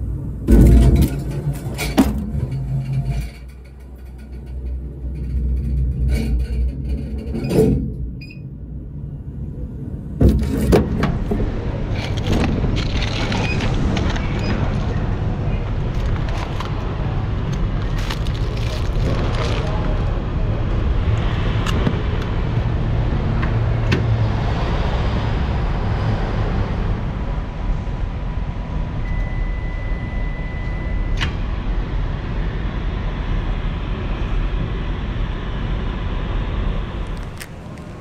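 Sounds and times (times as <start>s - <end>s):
microwave beep: 29.0s - 31.2s.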